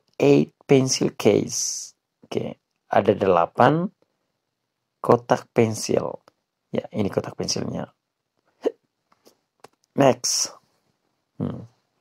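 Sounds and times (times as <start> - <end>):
man's throaty vocal blip: 11.4 - 11.7.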